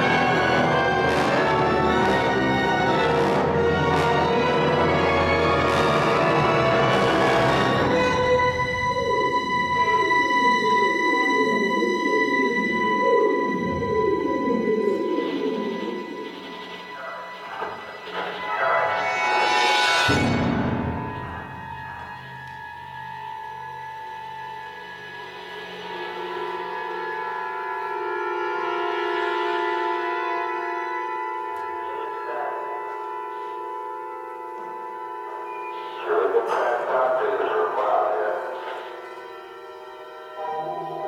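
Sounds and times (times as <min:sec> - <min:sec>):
orchestra with electronic sounds: 0:00.0 - 0:41.0
steady high tone: 0:00.0 - 0:41.0.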